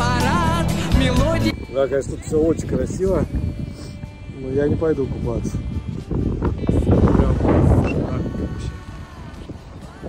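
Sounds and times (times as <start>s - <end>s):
faint background music: 0.0s - 10.0s
wind buffeting microphone: 1.5s - 10.0s.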